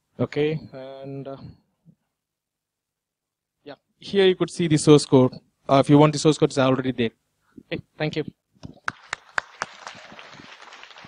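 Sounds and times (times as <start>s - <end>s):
audience applauding: 8.9s - 11.0s.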